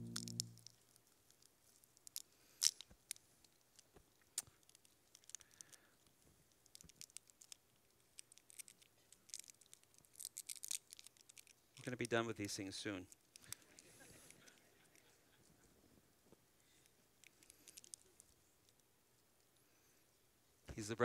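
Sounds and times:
plastic seal crackling: 8.2s - 11.6s.

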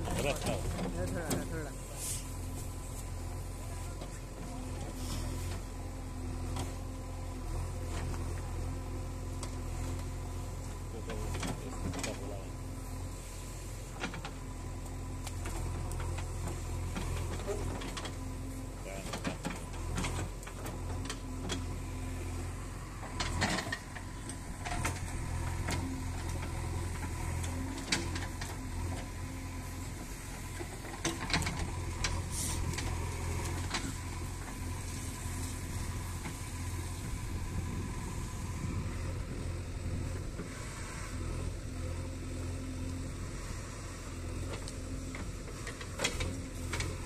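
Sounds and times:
diesel engine under load: 0.0s - 47.0s.

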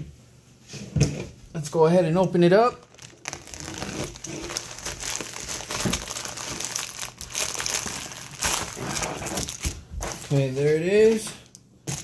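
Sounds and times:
mailer being torn open: 2.8s - 9.8s
plastic mailer crinkling: 2.8s - 11.3s.

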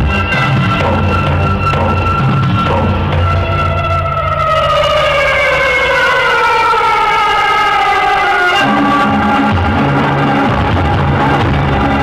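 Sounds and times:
eerie gliding synthesizer tone: 0.0s - 12.0s.

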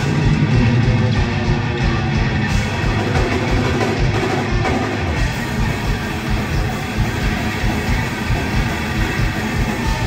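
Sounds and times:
thrash metal band playing: 0.0s - 10.0s.

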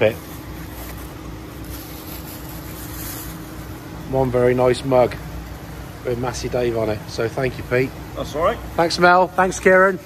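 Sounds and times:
plastic wrapping rustling: 0.0s - 4.4s
workshop hum: 0.0s - 10.0s.

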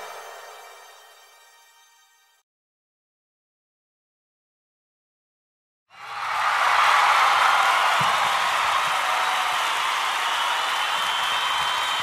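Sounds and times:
crowd applauding and cheering: 5.9s - 12.0s.

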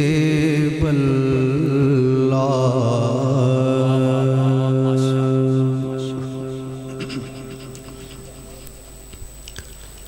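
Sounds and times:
man singing unaccompanied: 0.0s - 7.5s.

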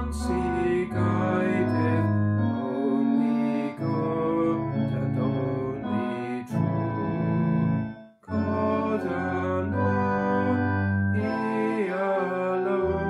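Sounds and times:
man singing a hymn: 0.0s - 7.4s, 8.3s - 13.0s
organ chords: 0.0s - 13.0s.

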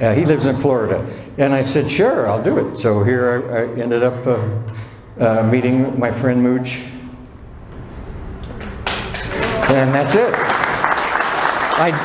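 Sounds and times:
room background noise: 0.0s - 12.0s
audience clapping: 8.5s - 12.0s.

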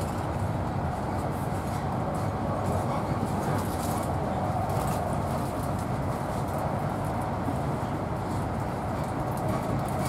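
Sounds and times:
train wheels rumbling on track: 0.0s - 10.0s.

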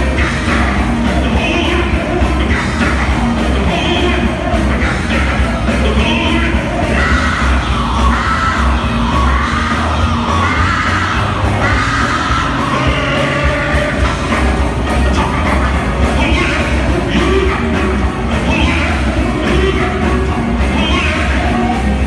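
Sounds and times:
crowd voices: 0.0s - 22.0s
drums: 0.0s - 22.0s
electric guitars: 0.0s - 22.0s
heavy bass: 0.0s - 22.0s.

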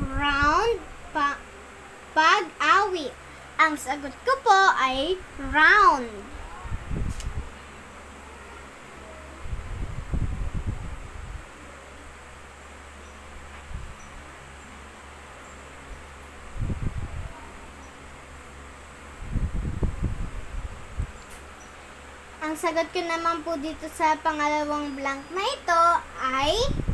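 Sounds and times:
low hum: 0.0s - 26.9s.

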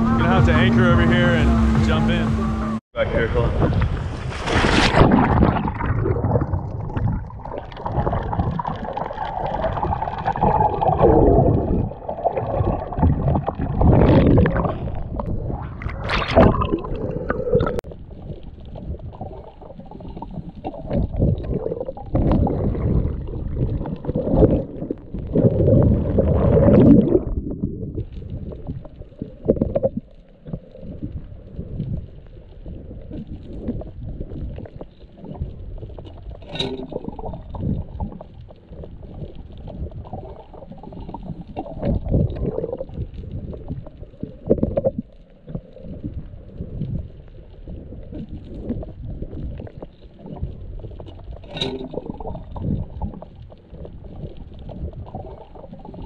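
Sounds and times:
muffled underwater rushing water: 0.0s - 56.0s
burst of bubbles: 3.5s - 32.0s, 32.7s - 47.1s.

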